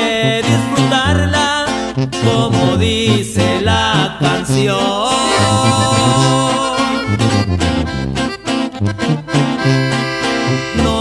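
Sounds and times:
accordion playing: 0:00.0 - 0:11.0
pulsing bass line: 0:00.2 - 0:11.0.

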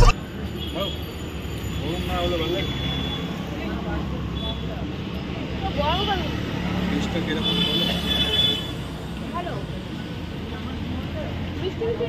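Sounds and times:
voices of passers-by: 0:00.0 - 0:12.0.

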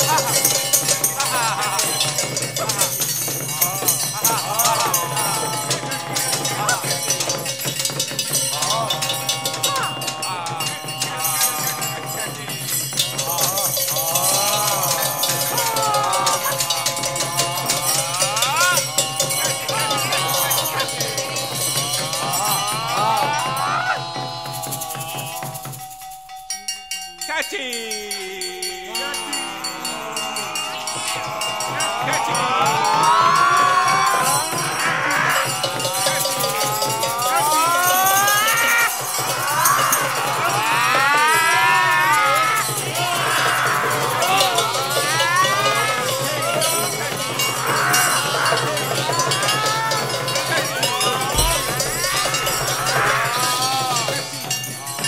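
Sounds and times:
players' voices: 0:00.0 - 0:25.9, 0:27.1 - 0:55.0
shouted vocal cry: 0:00.0 - 0:26.1, 0:27.1 - 0:55.0
horns improvising: 0:00.0 - 0:55.0
percussion strikes: 0:00.0 - 0:55.0.

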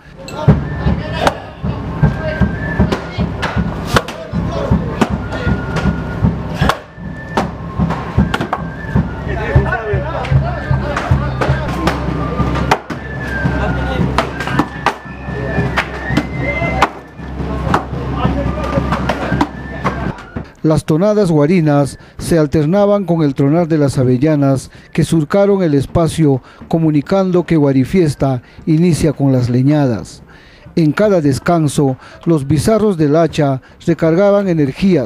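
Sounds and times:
axes splitting logs: 0:02.8 - 0:04.3, 0:05.0 - 0:08.8, 0:10.9 - 0:13.3, 0:14.2 - 0:18.0, 0:18.7 - 0:20.4
music with high piped melody: 0:04.2 - 0:20.4.

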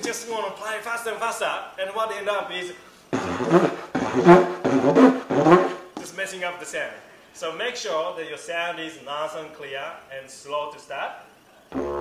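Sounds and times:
didgeridoo fast pulses: 0:03.2 - 0:05.9, 0:11.7 - 0:12.0.

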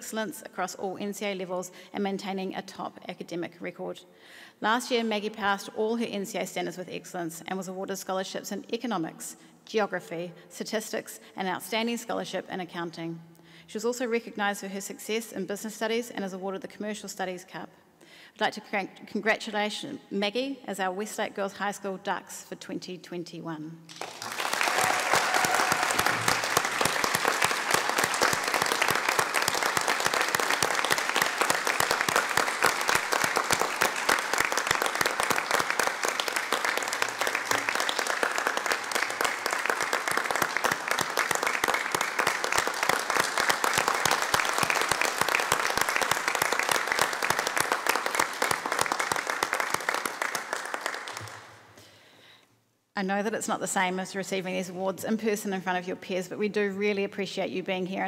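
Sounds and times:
audience applauding: 0:23.9 - 0:51.5.

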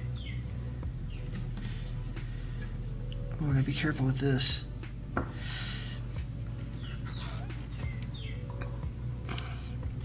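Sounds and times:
steady low hum: 0:00.0 - 0:10.0
chickens calling: 0:06.5 - 0:08.8.

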